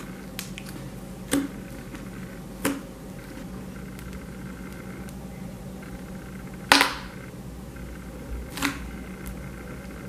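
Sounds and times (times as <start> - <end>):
slime squishing: 0.0 - 5.2.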